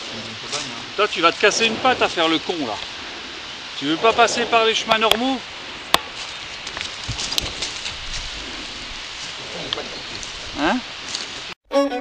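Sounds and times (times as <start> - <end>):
hooves knocking on stony ground: 0.0 - 11.4
twigs and dry leaves rustling: 0.0 - 11.6.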